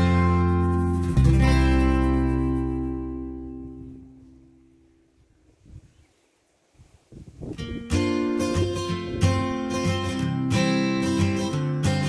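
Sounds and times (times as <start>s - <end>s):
acoustic guitar chords strummed: 0.0s - 5.0s, 7.6s - 12.0s.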